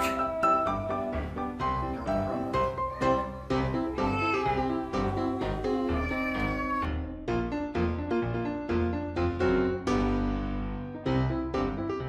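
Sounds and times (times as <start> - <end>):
cat meowing: 0.0 - 7.0
background piano music: 0.0 - 12.0.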